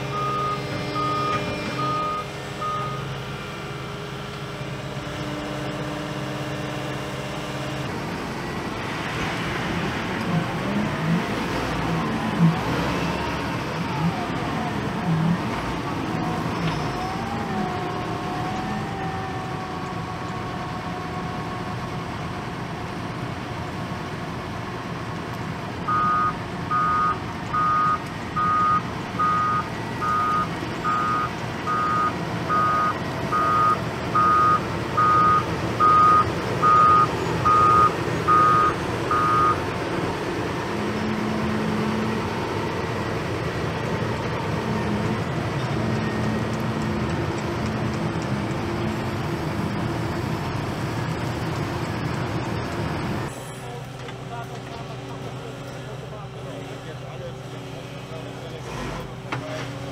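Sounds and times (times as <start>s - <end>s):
reversing alarm beeping: 0.0s - 3.2s, 25.9s - 39.6s
diesel engine running: 0.0s - 59.9s.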